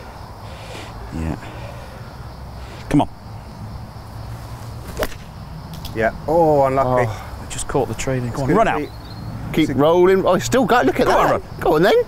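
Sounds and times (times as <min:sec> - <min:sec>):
golf club swish and ball strike: 0:04.8 - 0:05.9.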